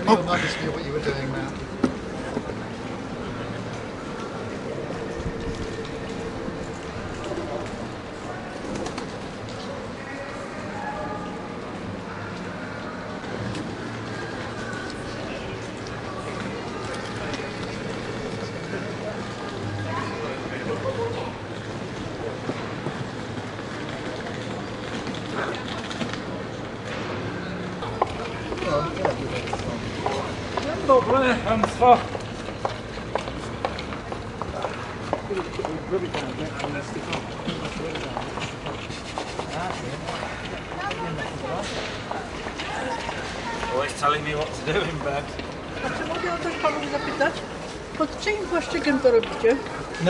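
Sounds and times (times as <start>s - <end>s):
faint voices of passers-by: 0.0s - 50.0s
steady street hum: 0.0s - 50.0s.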